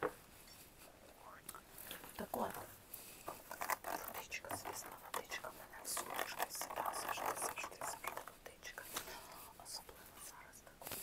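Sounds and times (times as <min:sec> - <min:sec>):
small clicks and crackles: 0:03.2 - 0:09.2
woman whispering: 0:03.9 - 0:10.8.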